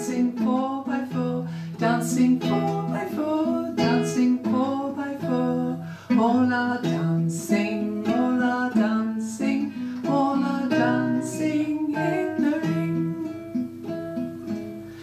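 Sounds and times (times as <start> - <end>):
woman singing: 0.0 - 13.5
plucked guitar: 0.0 - 15.0.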